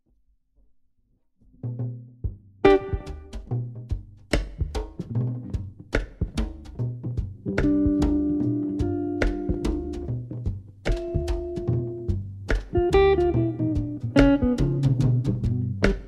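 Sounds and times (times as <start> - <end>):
drum hits: 2.3 - 16.0
rock band playing: 2.7 - 3.3, 7.6 - 10.0, 12.7 - 16.0
repeating bass notes: 7.0 - 16.0.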